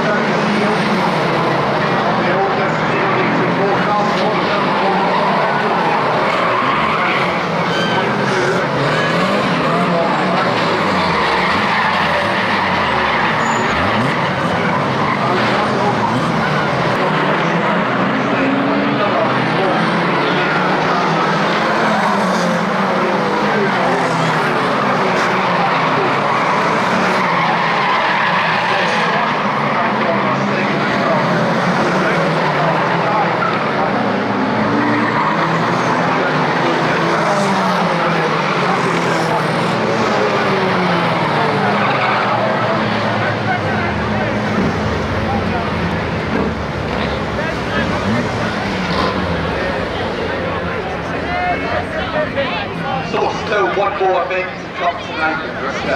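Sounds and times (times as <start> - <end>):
race car engines revving: 0.0 - 55.9
tyres skidding: 0.0 - 55.9.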